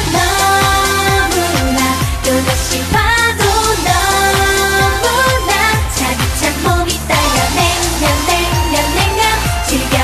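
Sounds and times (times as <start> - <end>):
electronic pop backing track: 0.0 - 10.0
woman singing into a microphone: 0.0 - 10.0.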